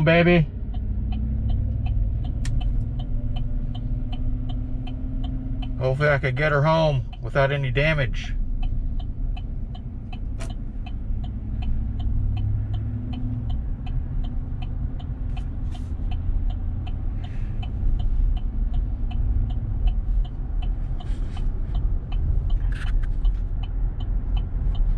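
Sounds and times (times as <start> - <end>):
road and engine rumble: 0.0 - 24.9
turn signal ticking: 0.0 - 24.9.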